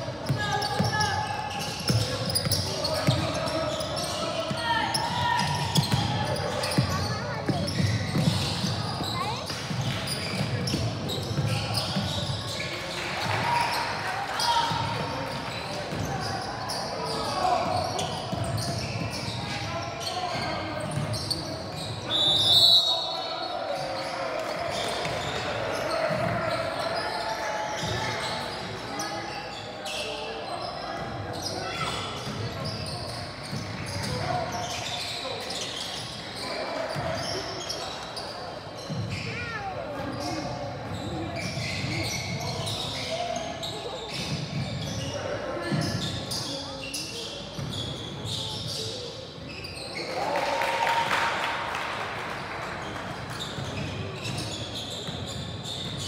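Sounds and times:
voices echoing in gym: 0:00.0 - 0:56.0
basketballs bouncing: 0:00.2 - 0:12.3
referee's whistle: 0:21.8 - 0:23.5.

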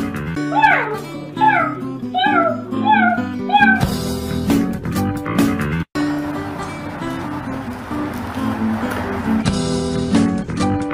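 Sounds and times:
acoustic guitar music: 0:00.0 - 0:10.9
cat meowing: 0:00.5 - 0:03.9.

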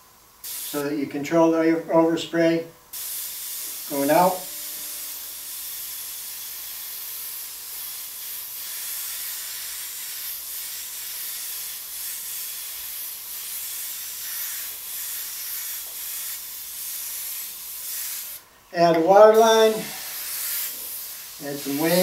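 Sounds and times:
airbrush hissing: 0:00.4 - 0:00.9, 0:02.9 - 0:18.5, 0:19.1 - 0:22.0.

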